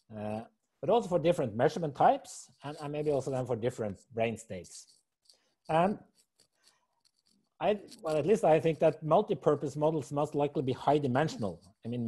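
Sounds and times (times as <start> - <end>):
man speaking: 0.0 - 4.9, 5.7 - 6.0, 7.6 - 12.0.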